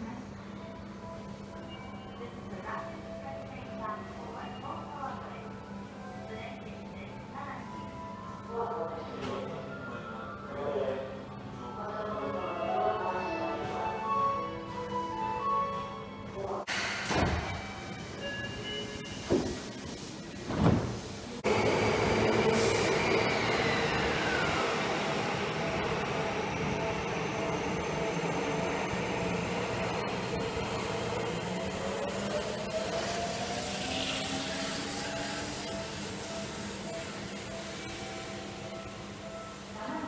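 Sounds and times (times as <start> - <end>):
train rumble with falling whine: 21.3 - 39.4
traction motor whine rising: 21.5 - 38.6.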